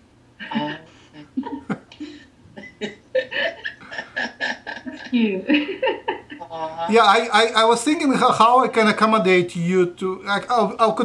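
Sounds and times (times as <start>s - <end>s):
man chuckling: 0.4s - 7.3s.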